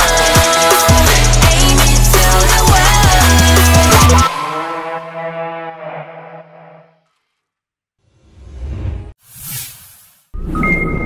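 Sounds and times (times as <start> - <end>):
whoosh sound effect: 8.2 - 10.5.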